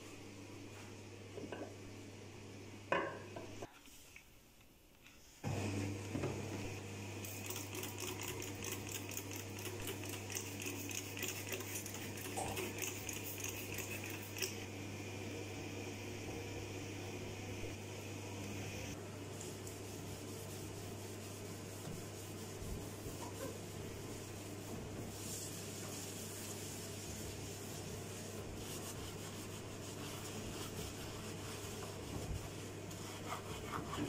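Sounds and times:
spray bottle spraying: 0:07.2 - 0:14.6.

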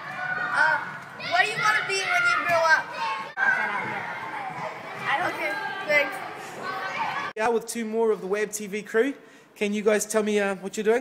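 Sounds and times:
children shouting excitedly: 0:00.0 - 0:07.4.

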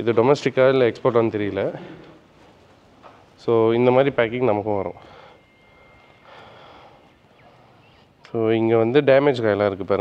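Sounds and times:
thin high whine: 0:02.7 - 0:09.9.

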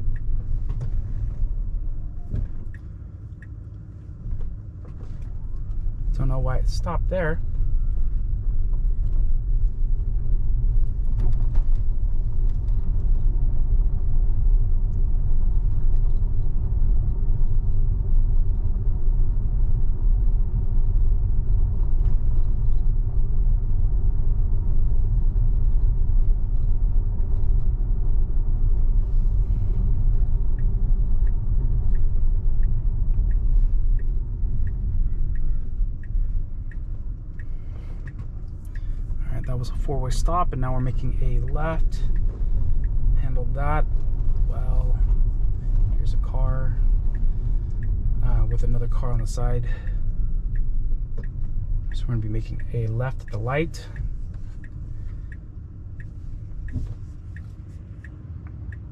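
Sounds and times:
road and tyre rumble in car: 0:00.0 - 0:58.9
turn signal ticking: 0:00.0 - 0:58.9.

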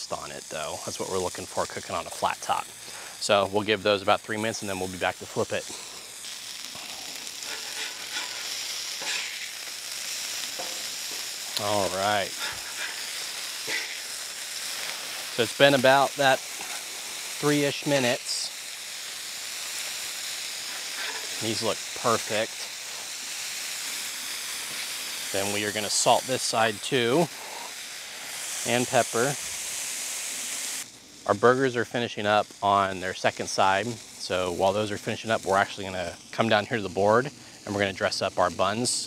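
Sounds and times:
patties sizzling on griddle: 0:00.0 - 0:39.0
metal spatula scraping steel: 0:07.5 - 0:09.5, 0:21.0 - 0:21.4.

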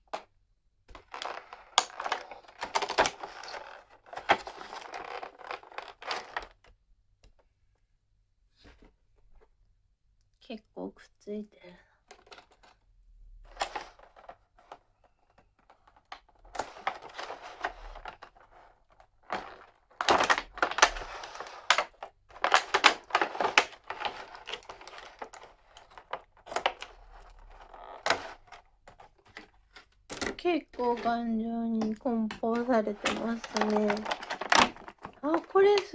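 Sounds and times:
plastic packaging crackling: 0:01.0 - 0:06.6, 0:15.3 - 0:35.9.

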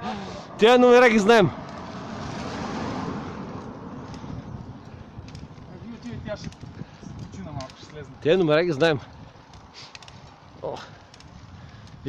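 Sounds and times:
bicycle tyres rolling on asphalt: 0:00.0 - 0:12.0
wind on microphone: 0:02.1 - 0:08.2.

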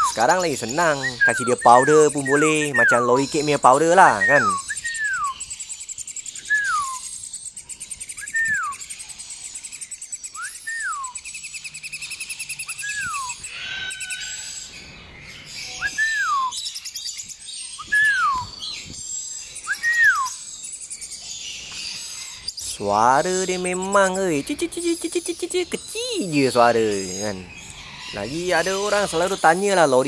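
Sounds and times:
lorikeet whistled call: 0:00.0 - 0:14.8, 0:15.5 - 0:30.0
thin fast bird chatter: 0:00.0 - 0:30.0.

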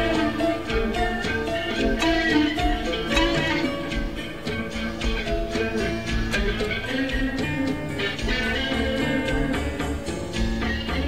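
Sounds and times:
live rock band: 0:00.0 - 0:11.0
plucked electric guitar notes: 0:00.0 - 0:11.0.

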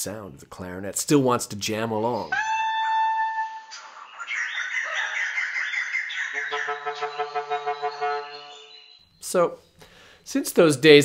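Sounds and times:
birds chattering: 0:03.6 - 0:10.0.

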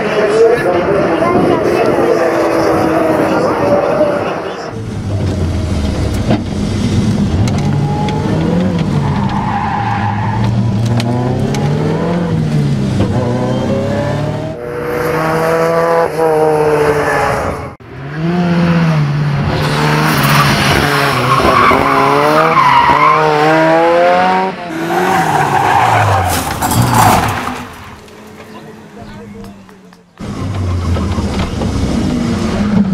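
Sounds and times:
racing car engine accelerating: 0:01.9 - 0:27.6.

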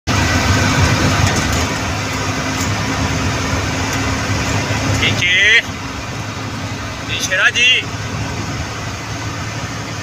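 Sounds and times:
bus engine running: 0:00.1 - 0:10.0
road noise: 0:00.1 - 0:10.0.

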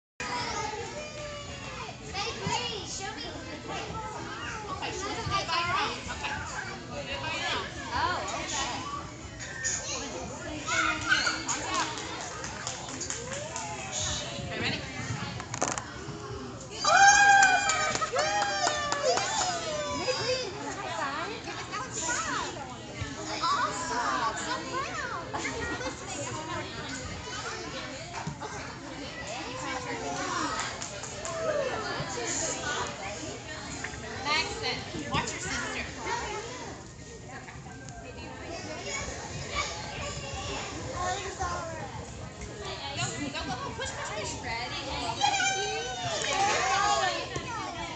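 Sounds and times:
adults and children talking: 0:00.2 - 0:47.9.

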